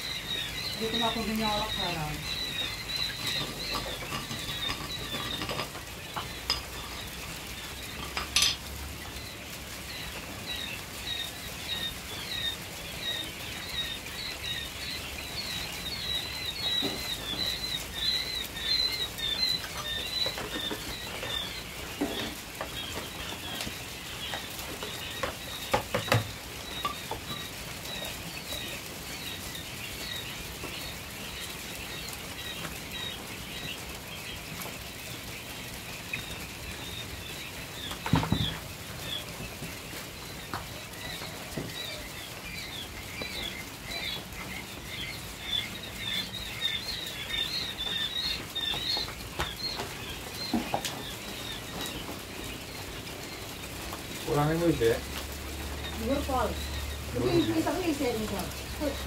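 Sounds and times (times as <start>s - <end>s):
quail chicks peeping: 0.0s - 59.0s.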